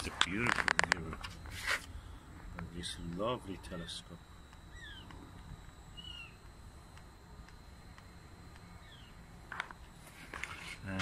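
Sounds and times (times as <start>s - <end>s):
animal chirping calls: 5.9s - 6.4s.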